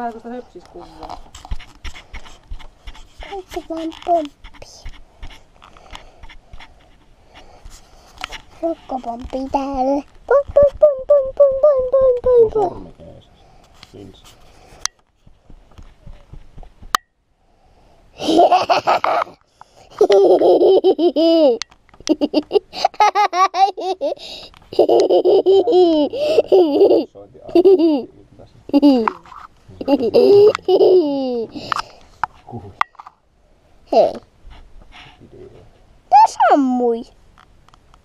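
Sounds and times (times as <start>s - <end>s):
child laughing: 9.9s - 12.8s, 18.2s - 28.1s, 28.7s - 29.2s, 29.8s - 31.7s, 33.9s - 34.2s.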